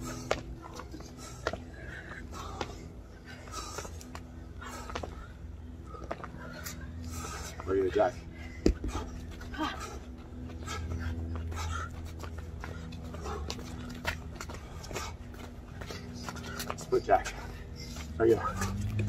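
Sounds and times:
people breathing hard: 0.0s - 19.0s.

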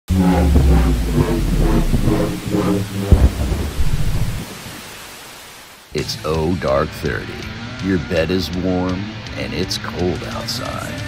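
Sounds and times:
loud deep rumble: 0.0s - 5.2s
pulsing pitched note: 0.0s - 5.2s
steady hiss: 2.0s - 5.9s.

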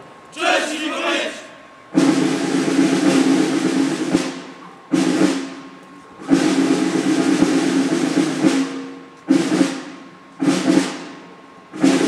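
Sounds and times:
snare drum rolls: 2.0s - 12.0s.

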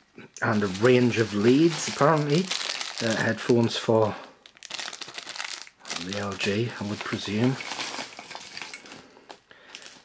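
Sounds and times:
plastic packaging crinkling: 0.4s - 10.0s.

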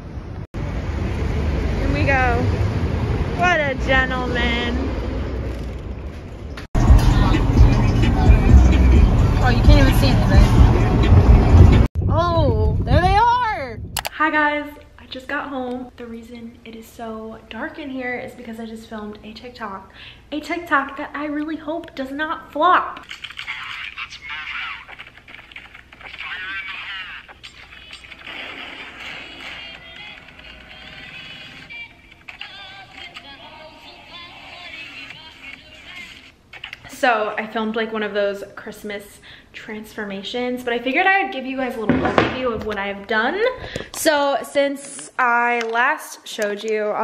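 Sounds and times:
traffic rumble: 0.0s - 14.0s
wind on microphone: 10.3s - 14.1s
thin voice from phone speaker: 26.1s - 28.1s.

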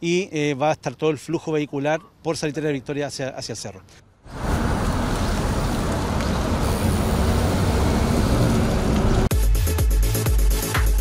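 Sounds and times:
cars driving past: 4.3s - 9.3s.

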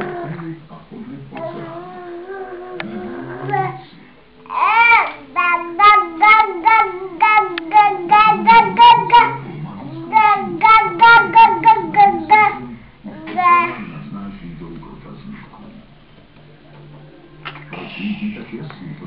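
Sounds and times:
toddler babbling: 1.4s - 3.8s, 4.5s - 13.9s.

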